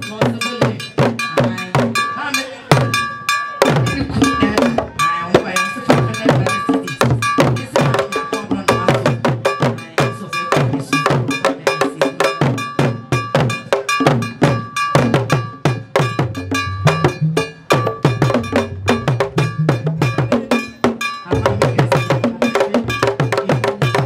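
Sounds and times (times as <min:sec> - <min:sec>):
metal bell clanging: 0:00.0 - 0:24.0
wooden drums beaten with sticks: 0:00.0 - 0:24.0.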